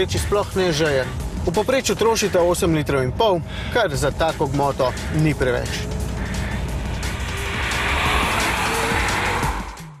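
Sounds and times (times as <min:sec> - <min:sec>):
background music: 0:00.0 - 0:10.0
car passing by: 0:05.9 - 0:10.0.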